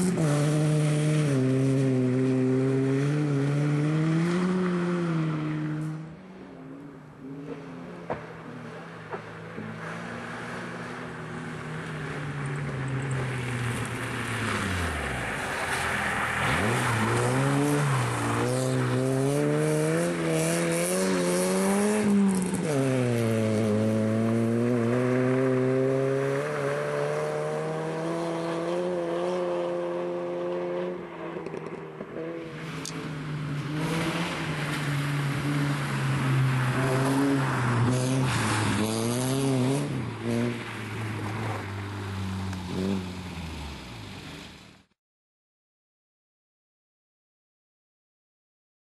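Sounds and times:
rally car engine revving: 0:00.0 - 0:06.0, 0:11.8 - 0:44.5.

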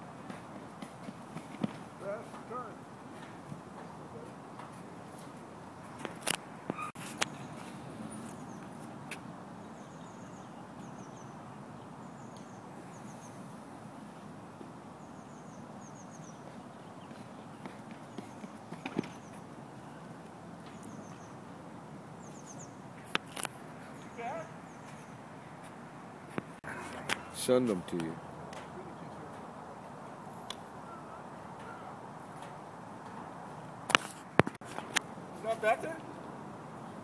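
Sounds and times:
running footsteps on rubber track: 0:00.2 - 0:02.5, 0:16.4 - 0:19.4
person shouting short calls: 0:24.1 - 0:24.5.

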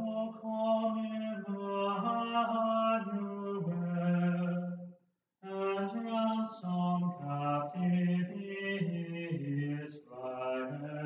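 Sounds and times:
person chanting slow melody: 0:00.0 - 0:04.7.

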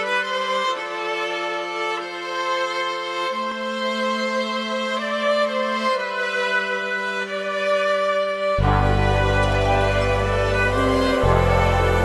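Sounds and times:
bowed strings playing chords: 0:00.0 - 0:12.0.

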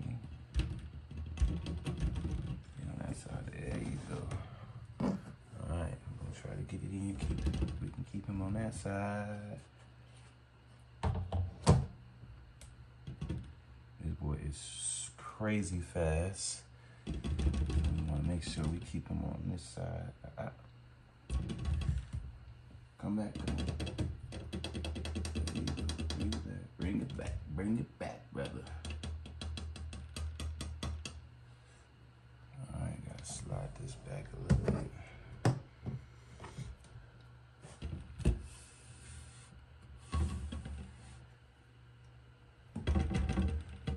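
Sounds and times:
low steady hum: 0:00.0 - 0:43.9
rapid sharp clicks and taps: 0:00.2 - 0:02.8, 0:17.0 - 0:18.9, 0:23.3 - 0:27.3, 0:28.4 - 0:31.2.

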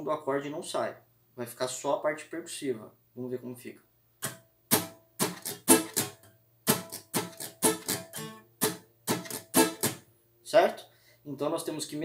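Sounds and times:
muted acoustic guitar strums: 0:04.2 - 0:10.0.

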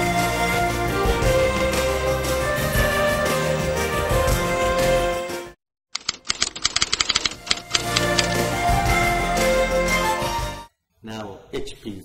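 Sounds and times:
typewriter key clicks: 0:06.0 - 0:08.5.

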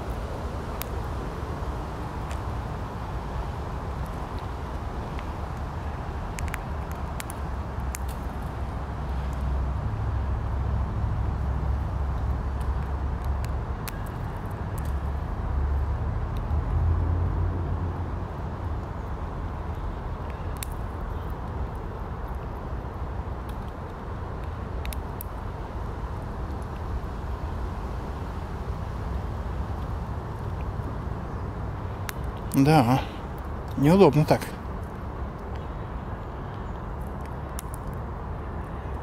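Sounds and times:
squirrel cracking nut shells: 0:02.0 - 0:02.5, 0:04.0 - 0:09.6, 0:11.5 - 0:15.4, 0:16.2 - 0:16.8, 0:19.6 - 0:22.7, 0:23.4 - 0:27.0, 0:31.9 - 0:35.7, 0:36.4 - 0:38.0.

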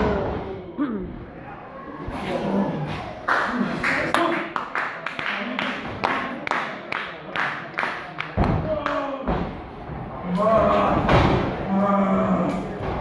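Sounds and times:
spectators clapping in rhythm: 0:03.2 - 0:09.1.

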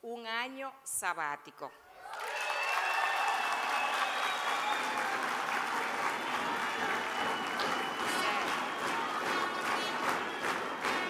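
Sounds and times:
audience applauding: 0:02.0 - 0:11.0.

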